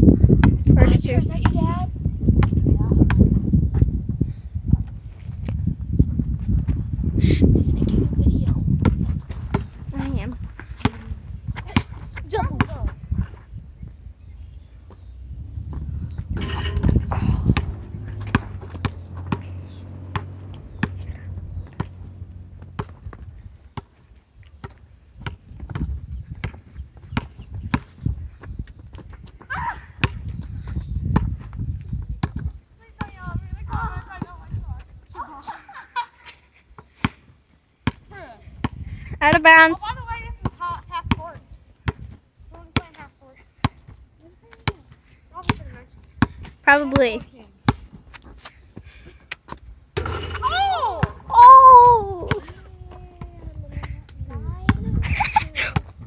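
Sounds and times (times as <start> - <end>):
basketball bouncing on asphalt: 0.3 - 3.9, 8.4 - 13.3, 14.8 - 34.6, 36.8 - 48.3, 49.4 - 51.4, 52.2 - 55.0
low rumble: 15.2 - 23.4.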